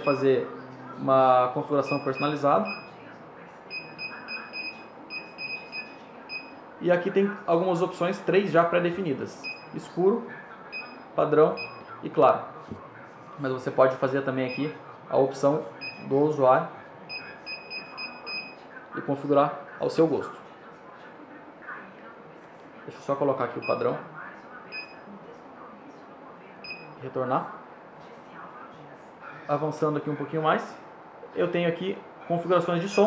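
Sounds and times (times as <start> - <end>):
high touchscreen key beeps: 0.0 - 0.3, 1.8 - 2.9, 3.7 - 6.6.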